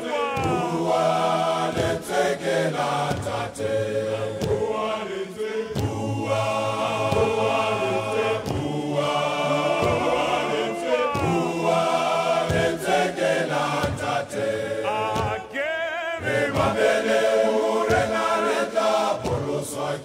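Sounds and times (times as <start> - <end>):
male choir singing in harmony: 0.0 - 20.0.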